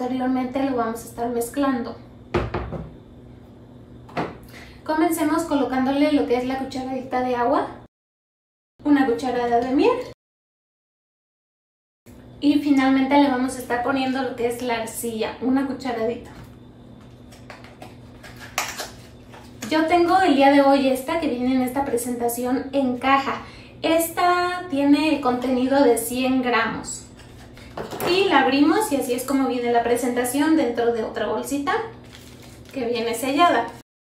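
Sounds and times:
woman speaking: 0:00.0 - 0:02.0, 0:04.8 - 0:07.9, 0:08.8 - 0:10.2, 0:12.4 - 0:16.4, 0:19.6 - 0:27.1, 0:28.0 - 0:32.0, 0:32.7 - 0:33.8
metal spoon knocking on table: 0:02.4 - 0:02.9.

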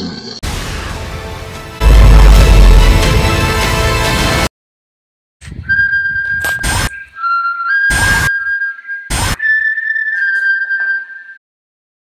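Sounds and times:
loud trailer music: 0:00.4 - 0:04.5
slow whistled tune: 0:05.6 - 0:11.4.

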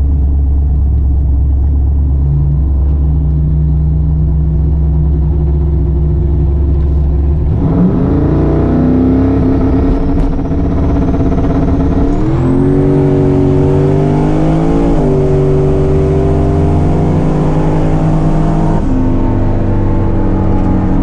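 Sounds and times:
car engine revving: 0:00.0 - 0:21.0.

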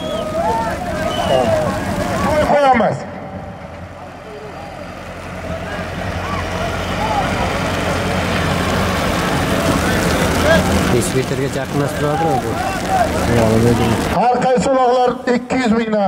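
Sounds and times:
faint shouting voices: 0:00.0 - 0:15.2
tractor engine running: 0:00.0 - 0:15.9.

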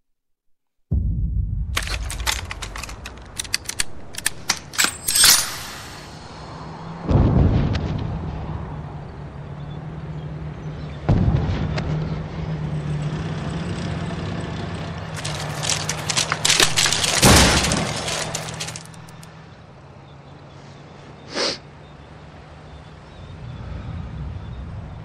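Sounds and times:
heavy boom: 0:00.9 - 0:02.3, 0:05.7 - 0:08.9, 0:11.1 - 0:12.0
crackling and breaking: 0:01.8 - 0:05.0, 0:15.1 - 0:19.3.

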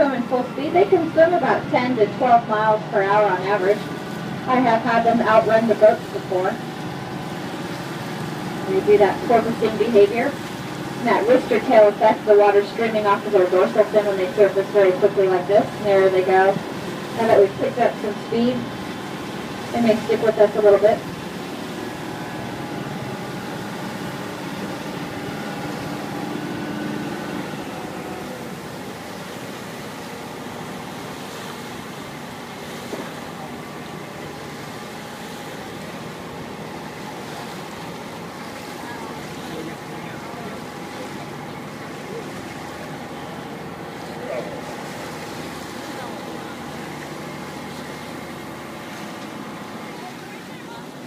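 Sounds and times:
boat engine humming: 0:00.0 - 0:51.0
water rushing along hull: 0:00.0 - 0:51.0.

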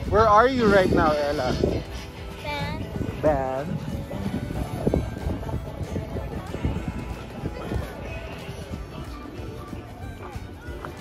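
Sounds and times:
background music: 0:00.0 - 0:11.0
voices: 0:00.0 - 0:11.0.

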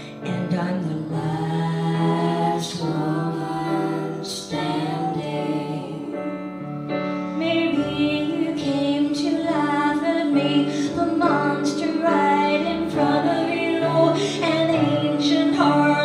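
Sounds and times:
woman singing into a microphone: 0:00.0 - 0:06.2, 0:07.4 - 0:16.0
bass: 0:00.0 - 0:16.0
piano: 0:00.0 - 0:16.0.

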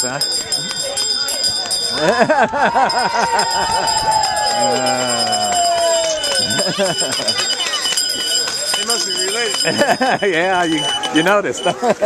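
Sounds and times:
runners' footsteps on asphalt: 0:04.8 - 0:11.2.

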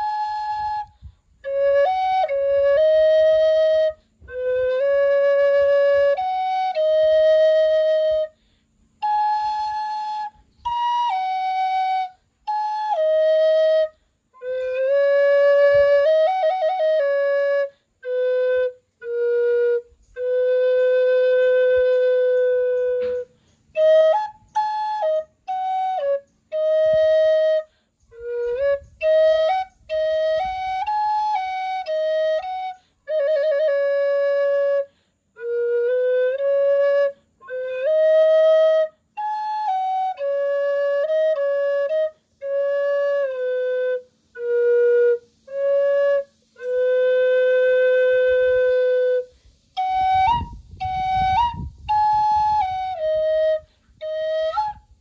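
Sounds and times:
wooden flute playing: 0:00.0 - 0:55.0.

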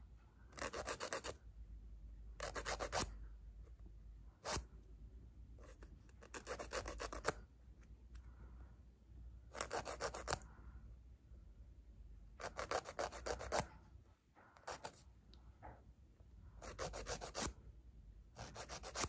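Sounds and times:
nail file rasping: 0:00.6 - 0:01.4, 0:02.4 - 0:03.1, 0:05.7 - 0:07.4, 0:09.5 - 0:10.4, 0:12.4 - 0:13.7, 0:16.6 - 0:17.5, 0:18.4 - 0:19.0.

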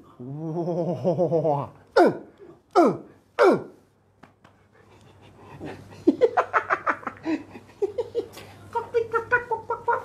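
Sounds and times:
man coughing: 0:02.0 - 0:03.8.

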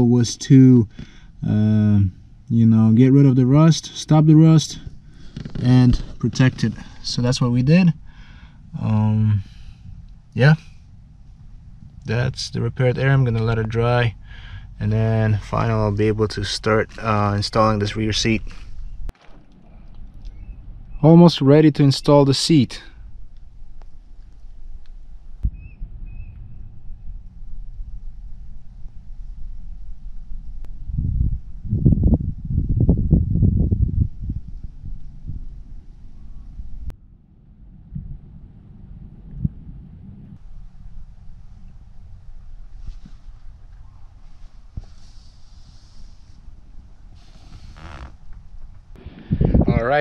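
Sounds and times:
wind rumbling on microphone: 0:04.4 - 0:50.0.

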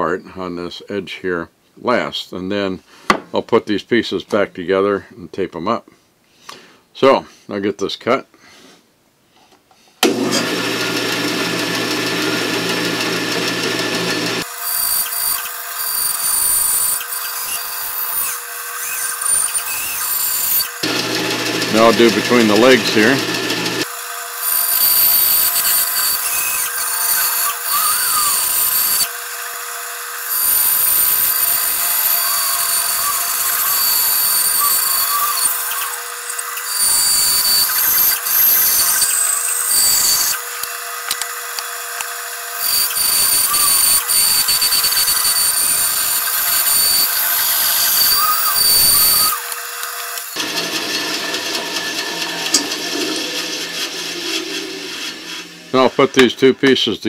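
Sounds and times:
band saw cutting wood: 0:10.0 - 0:56.7.

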